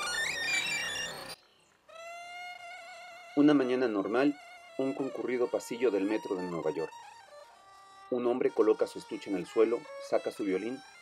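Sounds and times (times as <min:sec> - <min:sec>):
quiet steady held note: 0:00.1 - 0:11.0
violin music: 0:03.4 - 0:11.0.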